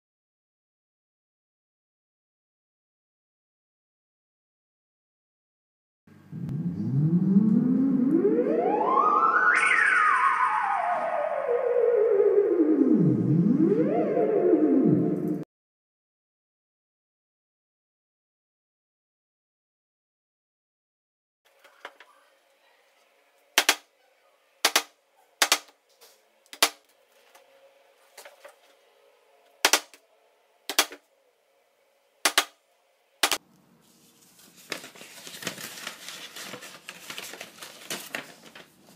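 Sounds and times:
theremin gliding tone: 6.3 - 15.4.

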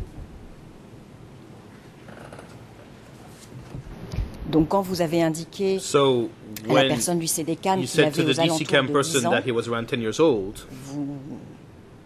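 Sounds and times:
room noise rumble and hiss: 0.0 - 12.0.

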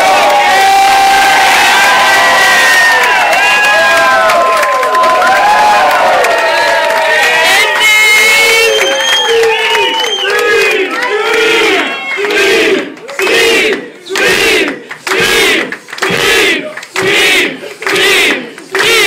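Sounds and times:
crowd cheering and shouting: 0.0 - 19.0
crowd chanting in unison: 10.2 - 19.0.

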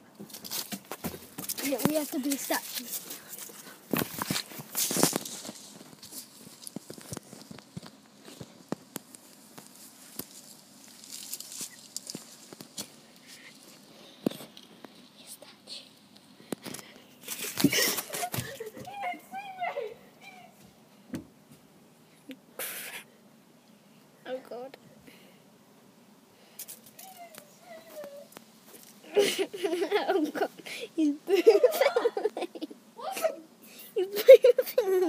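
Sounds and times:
rustling handling noise: 0.2 - 15.3.

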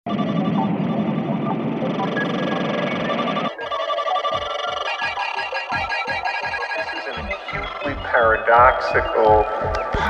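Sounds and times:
noisy layered synth texture: 0.1 - 10.0
kick drum beat: 3.6 - 10.0.

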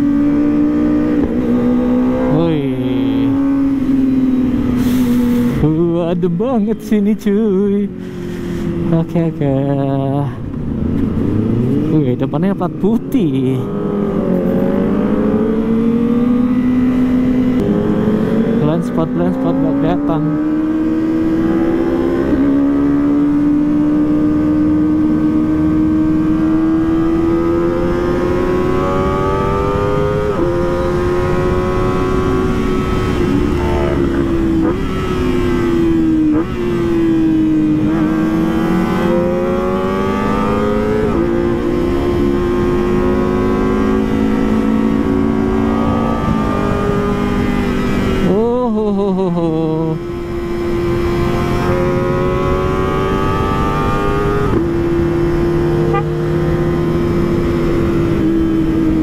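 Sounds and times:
motorcycle engine at high revs: 0.0 - 5.9, 10.6 - 59.0.

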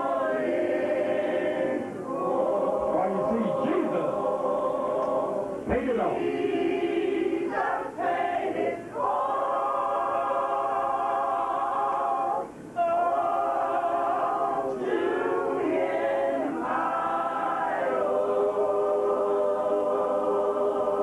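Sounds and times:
gospel choir singing a cappella: 0.0 - 21.0.

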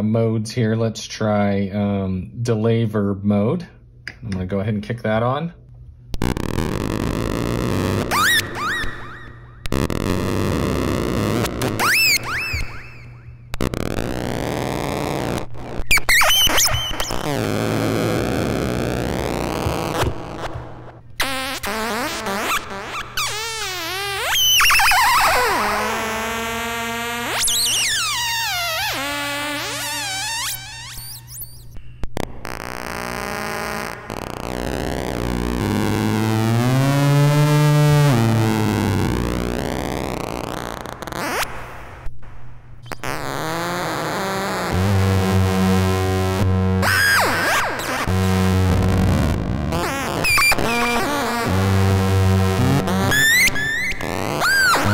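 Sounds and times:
glitchy electronic squeals: 6.2 - 20.5, 21.2 - 41.6, 42.9 - 54.9
steady low buzz: 31.8 - 54.9.

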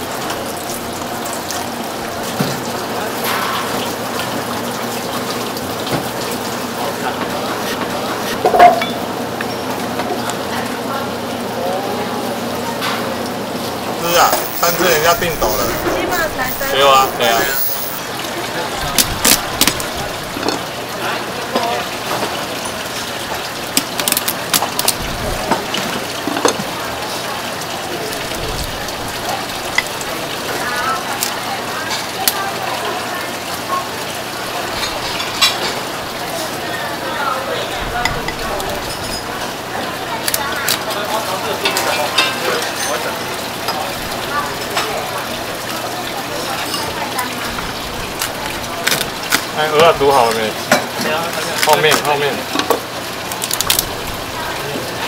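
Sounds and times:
faint voices: 0.0 - 23.6
steady kitchen hiss: 0.0 - 55.0.

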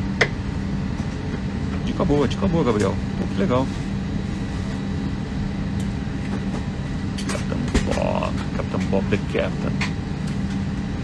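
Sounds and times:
cabin air conditioning hum: 0.0 - 11.0.

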